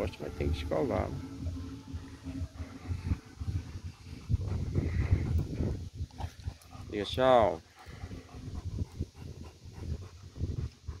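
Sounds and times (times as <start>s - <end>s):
dog panting: 0.5s - 11.0s.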